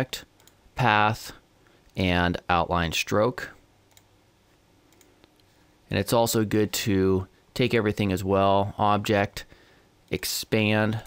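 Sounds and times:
computer mouse clicking: 0.4 - 0.6, 3.9 - 4.1, 4.9 - 5.5.

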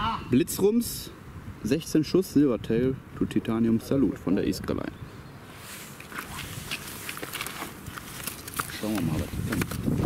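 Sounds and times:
handling scuffs and clicks: 5.9 - 10.0.

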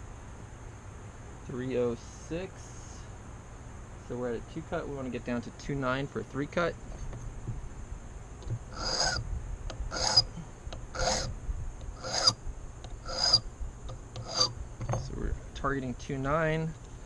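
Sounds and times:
metal file rasping on brass key: 8.7 - 15.1.

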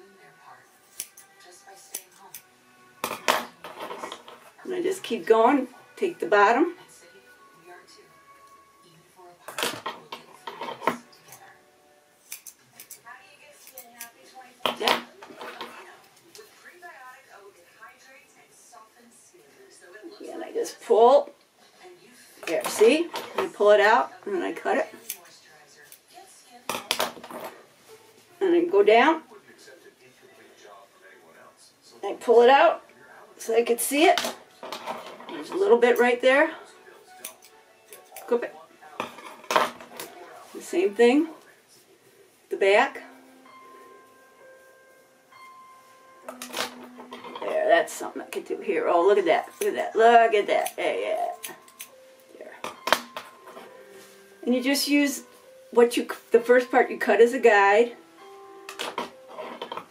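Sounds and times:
faint background music: 0.0 - 59.9
scissors snipping hair: 0.8 - 2.5, 10.3 - 11.5, 12.2 - 14.2, 24.9 - 26.1, 37.1 - 38.4, 49.4 - 49.8, 50.5 - 52.0.

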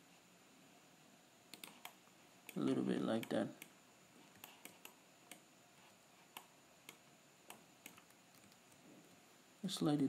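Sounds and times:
computer mouse clicks: 1.5 - 5.4, 6.3 - 8.8.

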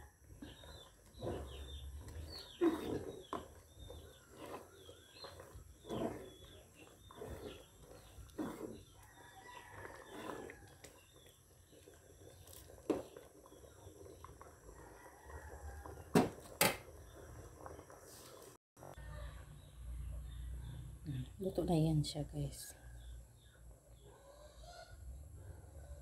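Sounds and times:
thick porridge being stirred: 0.0 - 19.0.

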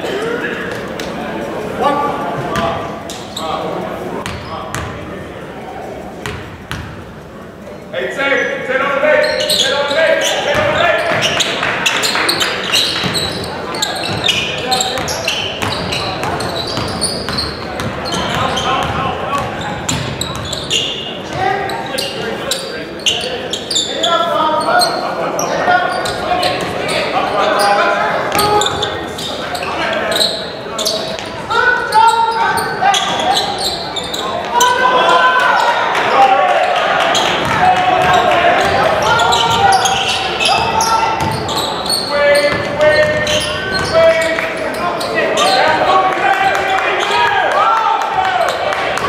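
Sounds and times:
voices echoing in gymnasium: 0.0 - 49.0.

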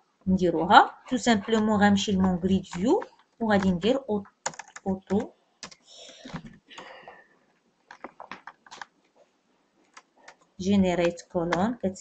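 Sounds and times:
computer keyboard key clicks: 4.4 - 5.8.

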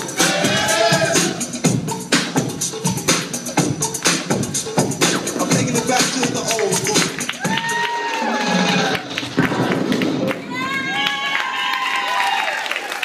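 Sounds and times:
hip-hop dance music: 0.0 - 11.0
audience and children cheering: 7.2 - 13.0.

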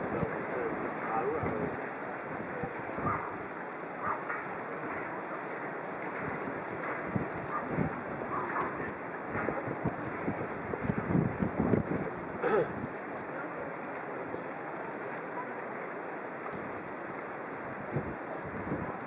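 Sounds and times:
wind buffeting microphone: 0.0 - 13.2, 16.5 - 19.0.

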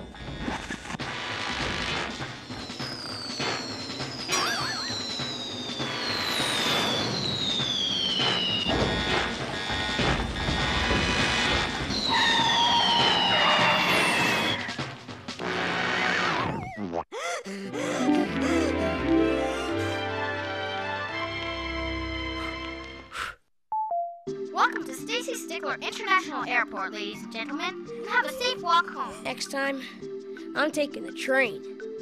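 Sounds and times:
cartoon falling whistles: 2.7 - 9.8, 11.9 - 14.8
background music: 11.6 - 23.1, 24.3 - 32.0.

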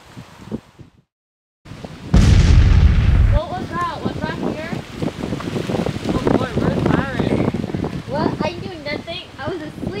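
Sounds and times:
bomb explosion: 2.2 - 3.7.

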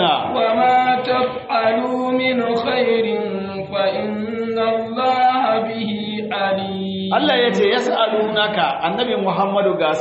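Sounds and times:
man chanting melodic recitation: 0.0 - 10.0.

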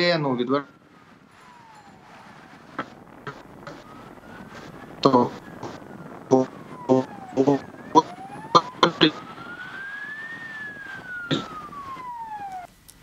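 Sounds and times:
siren wailing: 0.0 - 12.8
man's clipped voice: 5.0 - 9.2.

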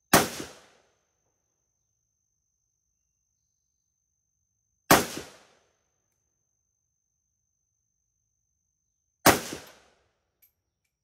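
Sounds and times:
gunshot echo: 0.1 - 0.8, 4.9 - 5.6, 9.2 - 9.9
rifle shot: 0.1 - 0.8, 4.9 - 5.6, 9.2 - 10.0.

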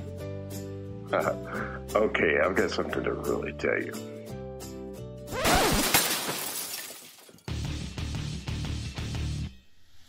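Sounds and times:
glass shattering crash: 5.3 - 7.5.

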